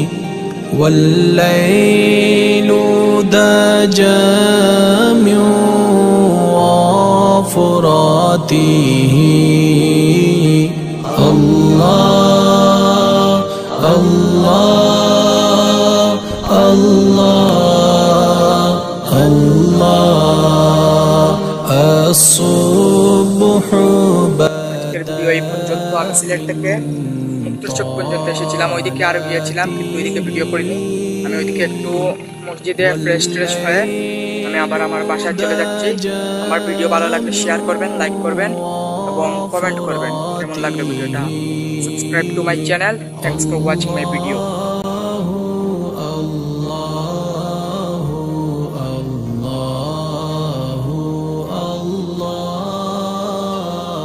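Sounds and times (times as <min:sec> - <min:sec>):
voice chanting long held notes: 0:00.0 - 0:54.0.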